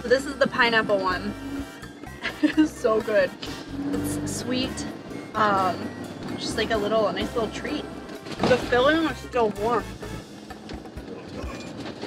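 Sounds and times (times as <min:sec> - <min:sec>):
quiet background music: 0:00.0 - 0:12.0
vehicle road noise: 0:00.0 - 0:12.0.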